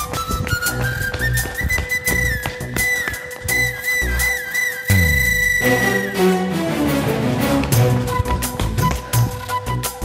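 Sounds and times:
high whistle-like melody: 0.0s - 6.8s
percussive beat with bass: 4.9s - 5.7s.

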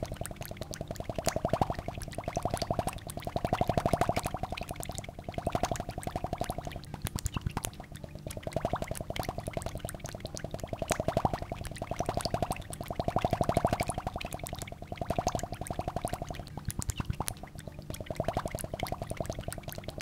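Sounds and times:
rapid clicking bubbling pulses: 0.0s - 20.0s.

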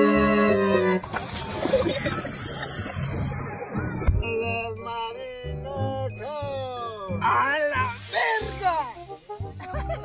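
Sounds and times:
water splashing: 1.0s - 4.2s.

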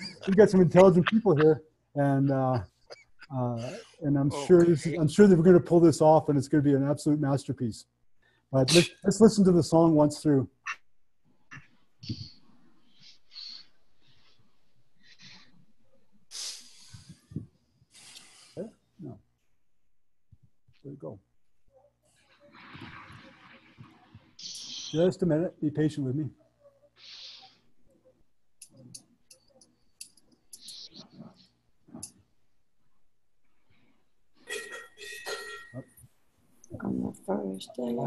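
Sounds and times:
breathy microphone hiss: 0.0s - 10.8s, 22.4s - 27.8s, 34.3s - 38.0s.

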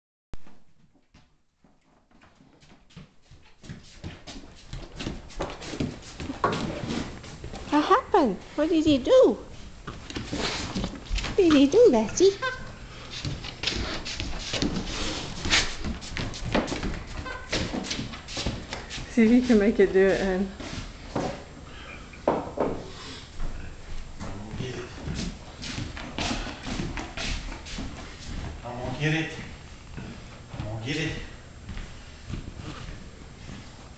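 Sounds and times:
dog paws on hardwood floor: 0.4s - 21.5s, 23.4s - 30.8s, 31.6s - 33.9s.

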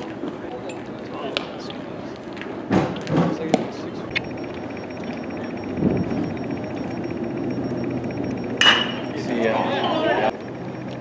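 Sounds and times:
faint high whine: 3.8s - 11.0s
fast even ticking: 4.1s - 9.5s.

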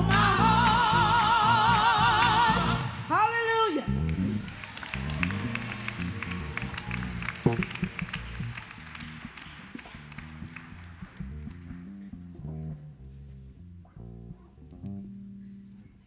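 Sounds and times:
bass and piano gospel chords: 0.0s - 3.1s, 3.9s - 15.9s
audience applause: 4.2s - 12.2s.

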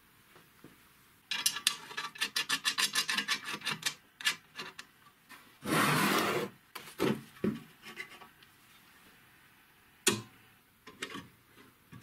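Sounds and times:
rough scraping rub: 5.6s - 6.6s.

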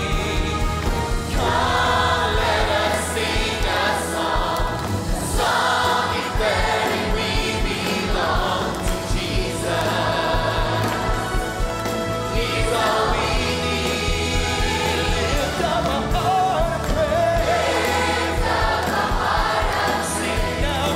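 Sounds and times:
band playing: 0.0s - 20.9s
choir singing gospel song: 0.0s - 20.9s
steady drum beat: 0.0s - 20.9s.

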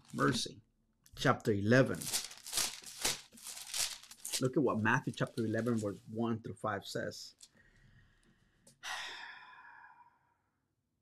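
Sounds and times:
man exhaling: 8.8s - 10.2s.

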